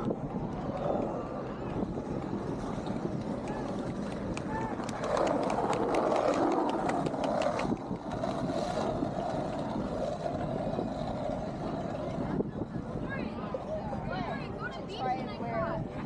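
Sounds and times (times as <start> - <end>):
faint voices of passers-by: 0.0 - 16.0
wheelchair rolling on concrete: 2.2 - 12.2.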